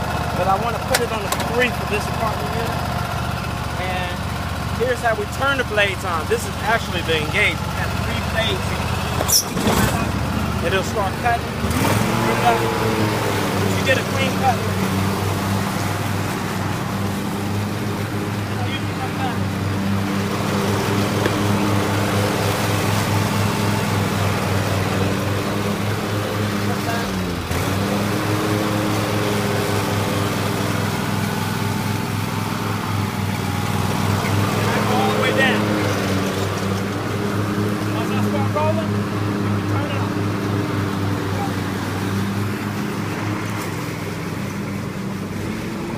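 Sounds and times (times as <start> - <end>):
lawn tractor engine running: 0.0 - 45.9
mower blades cutting grass: 0.0 - 45.9.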